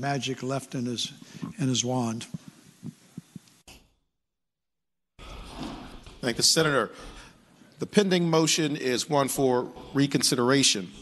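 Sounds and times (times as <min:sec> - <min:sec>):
faint breaths: 0:01.1 - 0:01.6, 0:06.9 - 0:07.8.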